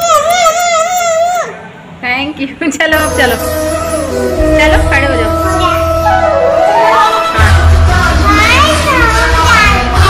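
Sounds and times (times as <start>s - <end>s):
background music: 2.9s - 10.0s.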